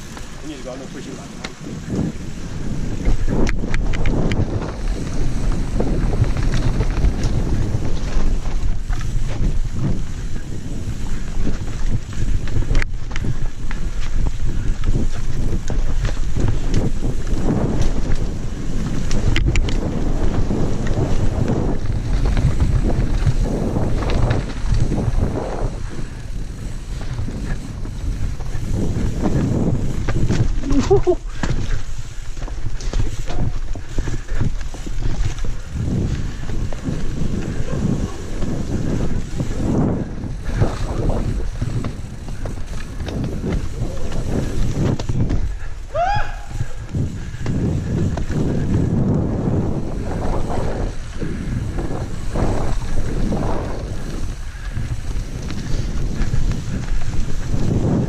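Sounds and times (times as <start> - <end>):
tyres rolling on dirt: 0.0 - 58.0
wind buffeting microphone: 0.0 - 58.0
bike clattering and knocking: 2.9 - 10.4, 11.0 - 46.1
rider whooping and laughing: 30.5 - 31.6, 37.4 - 38.8, 45.6 - 47.2.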